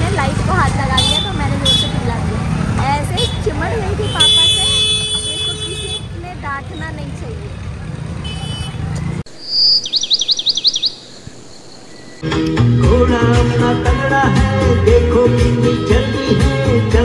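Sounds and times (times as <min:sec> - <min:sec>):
street traffic: 0:00.0 - 0:17.0
vehicle horn: 0:01.0 - 0:02.0, 0:03.2 - 0:06.2, 0:08.2 - 0:08.9.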